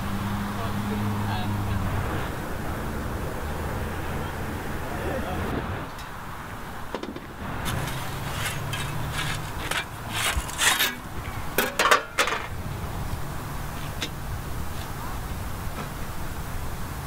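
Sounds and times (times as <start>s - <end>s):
metal peel scraping brick: 7.6s - 12.2s.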